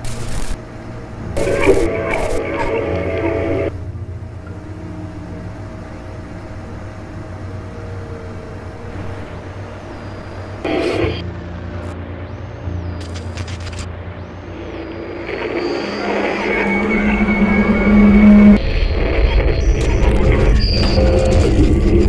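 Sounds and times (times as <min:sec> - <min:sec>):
dark ambient drone: 0:00.0 - 0:22.0.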